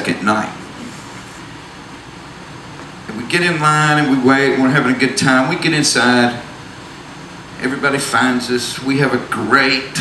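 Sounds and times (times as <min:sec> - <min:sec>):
steady room noise hiss: 0:00.0 - 0:10.0.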